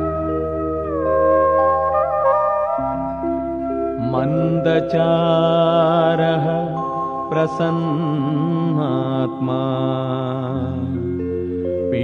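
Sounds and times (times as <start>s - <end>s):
man singing chant-like melody: 4.0s - 11.1s.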